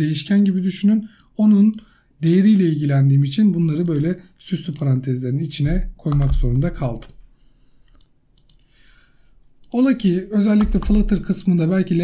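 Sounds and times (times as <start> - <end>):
computer mouse clicks: 3.8 - 4.9, 6.0 - 6.4, 7.8 - 8.7, 10.5 - 11.2.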